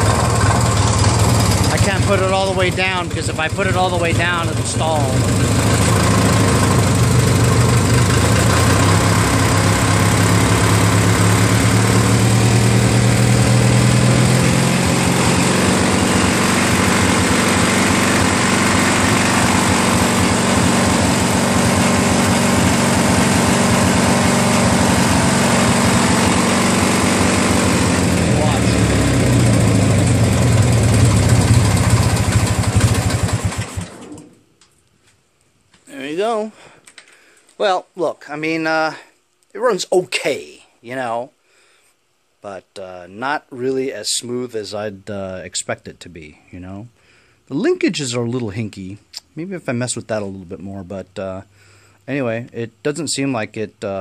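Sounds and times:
garden tractor engine running: 0.0s - 34.4s.

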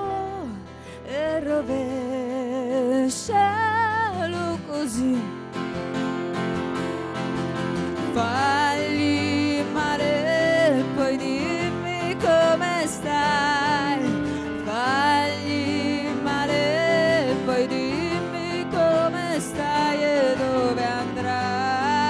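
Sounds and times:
singer with vibrato: 0.0s - 5.4s, 8.1s - 22.0s
strummed guitar: 0.0s - 22.0s.

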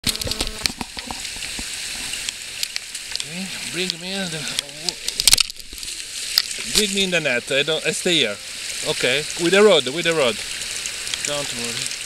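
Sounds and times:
fish splashing: 0.0s - 12.0s
flowing river water: 0.0s - 12.0s.

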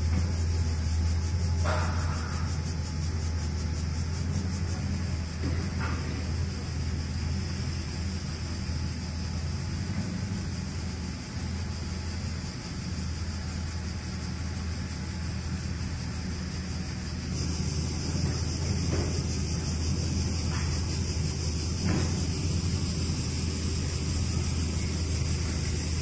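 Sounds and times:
hiss: 0.0s - 26.0s
low engine rumble: 0.0s - 26.0s.

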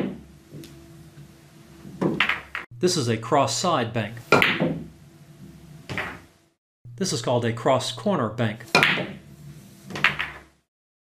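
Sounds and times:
pool ball knock: 2.0s - 2.7s, 4.3s - 4.9s, 8.8s - 9.2s, 9.9s - 10.4s.

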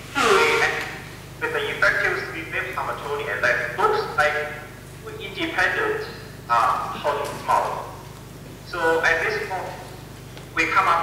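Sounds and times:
steady low hum: 0.0s - 11.0s
speech over loudspeakers: 0.2s - 11.0s.

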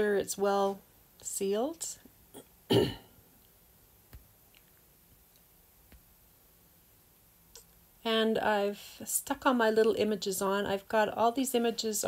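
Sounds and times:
woman clearing her throat: 2.3s - 3.2s.

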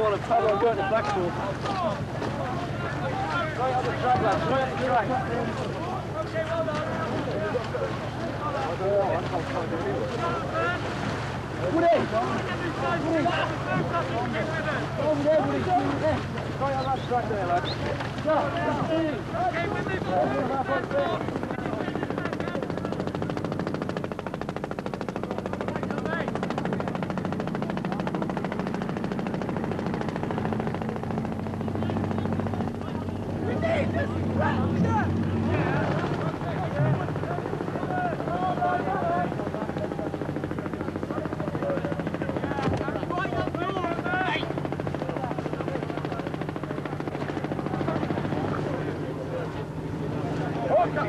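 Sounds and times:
low engine drone: 0.0s - 51.0s.

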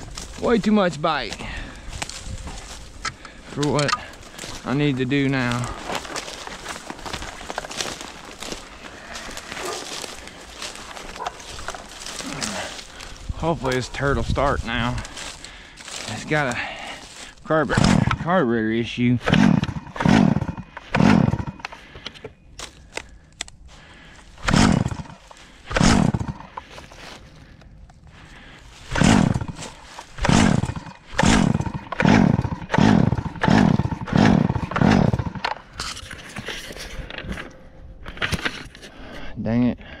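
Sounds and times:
chainsaw recoil starter pulls: 24.4s - 25.1s, 28.9s - 36.0s.

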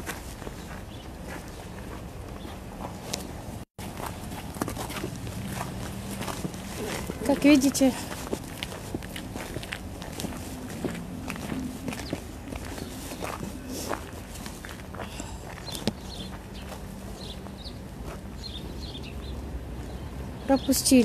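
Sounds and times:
footsteps on snow and ice: 0.0s - 20.0s.

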